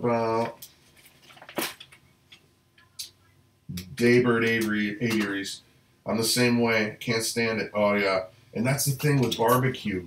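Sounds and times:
paper rustling: 0:00.8 - 0:02.0.

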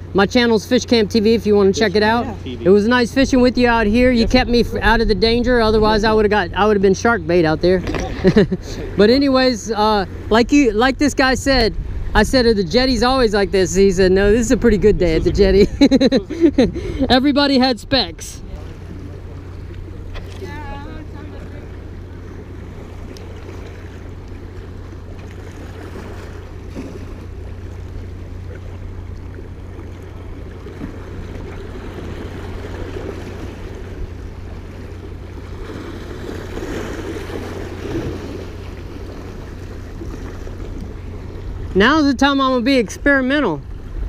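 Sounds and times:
wind on microphone: 0:10.1 - 0:17.1
waves splashing against rocks: 0:18.5 - 0:42.3.

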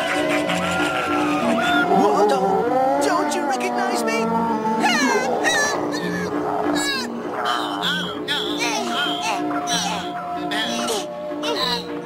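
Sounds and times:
animated creature crying: 0:00.0 - 0:12.0
cartoon background music: 0:00.0 - 0:12.0.

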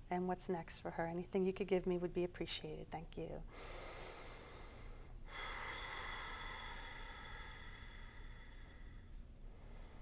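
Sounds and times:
woman breathing slowly: 0:03.5 - 0:10.0.

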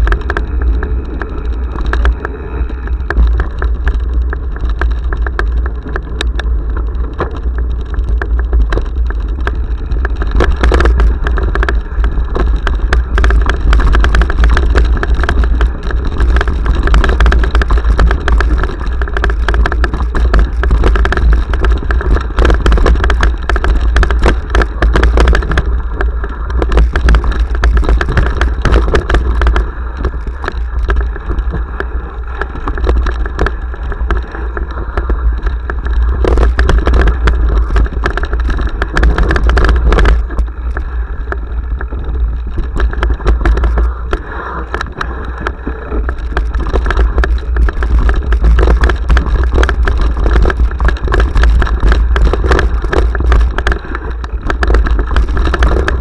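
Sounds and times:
bike clattering over stones: 0:00.0 - 0:56.0
wind rumble on microphone: 0:00.0 - 0:56.0.

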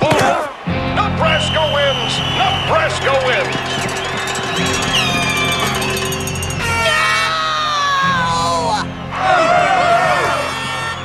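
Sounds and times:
crowd noise: 0:00.0 - 0:11.0
music: 0:00.0 - 0:11.0
boy screaming: 0:06.7 - 0:10.8.

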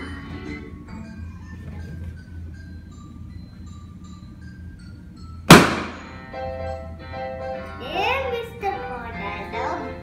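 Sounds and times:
balloon popping bang: 0:05.5 - 0:06.1.

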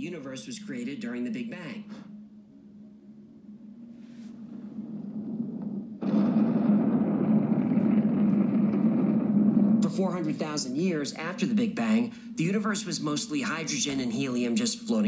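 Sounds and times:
cinematic low rumble: 0:02.2 - 0:14.6.

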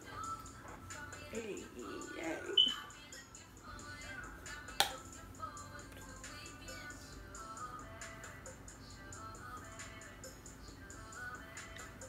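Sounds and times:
pop music with light beat: 0:00.0 - 0:12.0
finger snap: 0:04.7 - 0:05.0.

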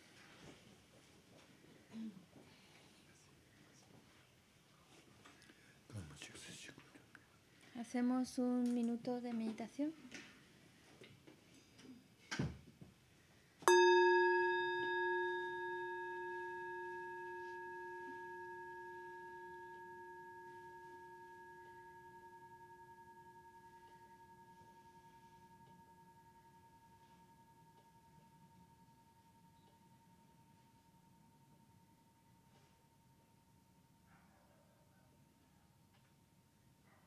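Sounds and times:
singing bowl ringing: 0:13.7 - 0:34.0.

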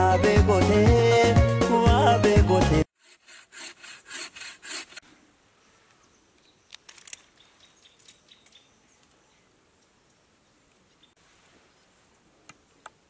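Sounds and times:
background music: 0:00.0 - 0:02.9
bow saw cutting wood: 0:02.8 - 0:05.0.

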